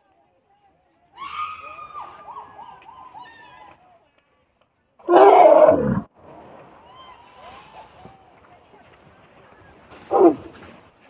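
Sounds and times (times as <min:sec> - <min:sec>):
elephant roaring: 0:05.1 - 0:06.1, 0:10.1 - 0:10.5.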